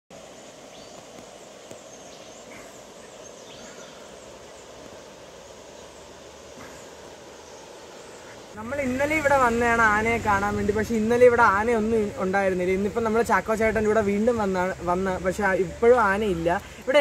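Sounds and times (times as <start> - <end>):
river rushing over stones: 0.1 - 17.0.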